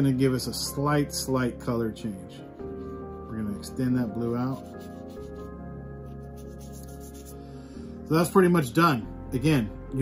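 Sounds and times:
soft background music: 0.0 - 10.0
wet brush rubbing on paper: 2.6 - 7.5.

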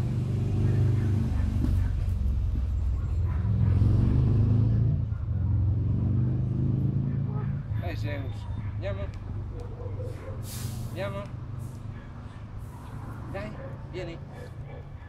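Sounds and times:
vehicle engine running: 0.0 - 15.0.

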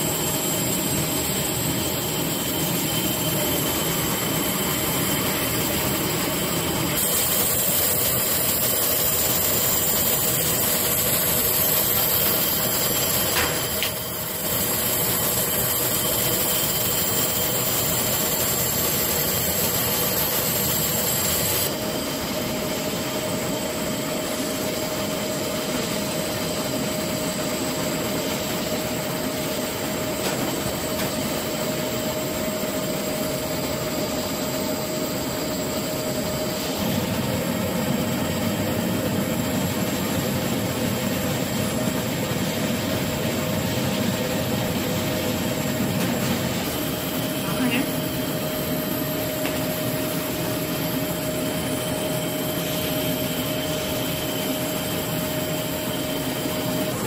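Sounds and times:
constant hum: 0.0 - 57.0
laser cutter mechanical rush: 0.0 - 57.0.

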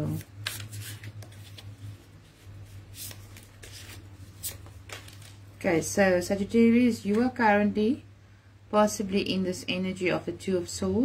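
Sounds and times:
cards being shuffled: 0.0 - 5.5
steady low hum: 0.0 - 11.0.

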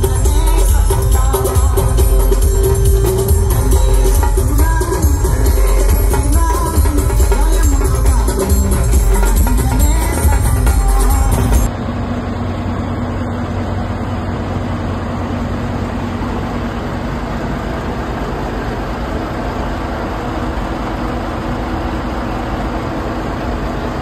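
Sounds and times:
truck engine idling: 0.0 - 24.0.

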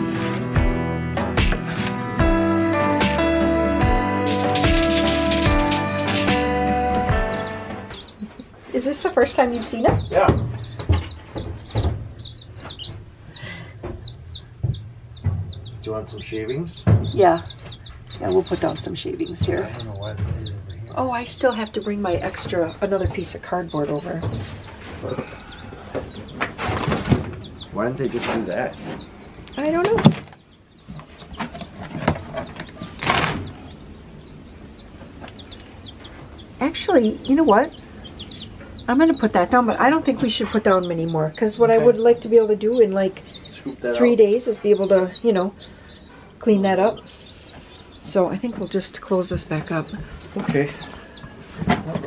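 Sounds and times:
baby chicks peeping: 0.0 - 52.0
soft knocks: 9.6 - 13.1, 13.8 - 15.8, 16.6 - 20.6.

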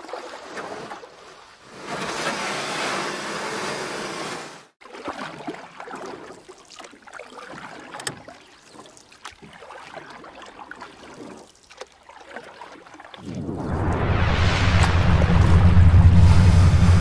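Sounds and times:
water splashing and sloshing: 0.0 - 17.0
water rushing: 13.2 - 17.0.

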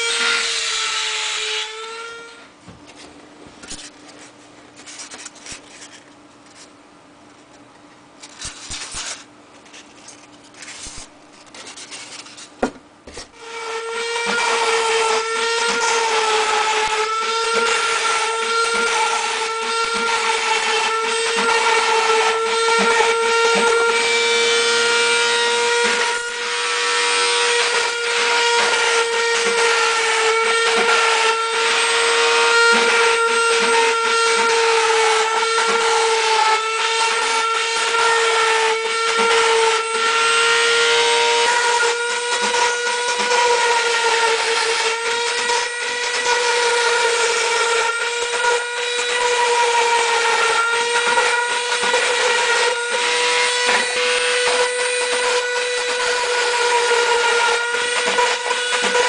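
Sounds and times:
router spindle whining: 13.3 - 59.0.

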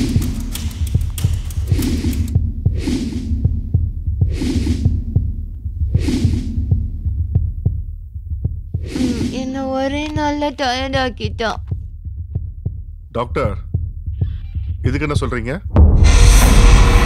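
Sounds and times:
deep heartbeat-like throbbing: 0.0 - 17.0
film soundtrack: 0.0 - 17.0.

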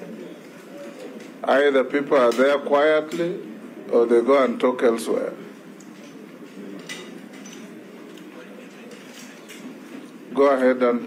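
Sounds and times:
faint chatter of people: 0.0 - 11.0.

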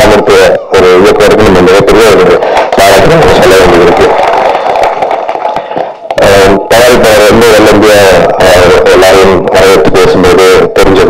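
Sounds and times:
man speaking over public address: 0.0 - 4.3, 6.2 - 11.0.

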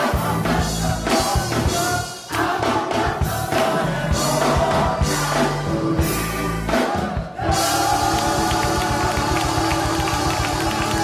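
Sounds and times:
drum kit beats: 0.0 - 11.0
gospel choir singing: 0.0 - 11.0
keyboard: 0.0 - 11.0.

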